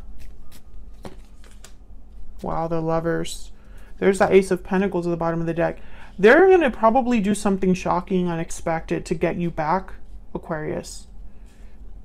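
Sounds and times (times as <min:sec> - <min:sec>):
cards being shuffled: 0:00.0 - 0:02.6.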